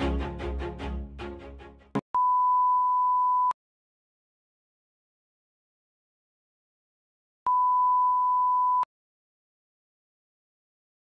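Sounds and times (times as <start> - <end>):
background music: 0.0 - 2.0
steady test tone beep: 2.2 - 3.6, 7.5 - 8.9.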